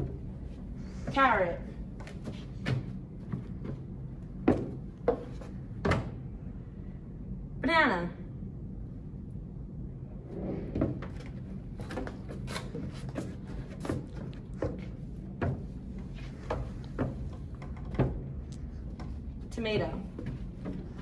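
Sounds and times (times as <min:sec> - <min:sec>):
steady low hum: 0:00.0 - 0:21.0
footsteps on wooden stairs: 0:01.1 - 0:06.1, 0:10.8 - 0:21.0.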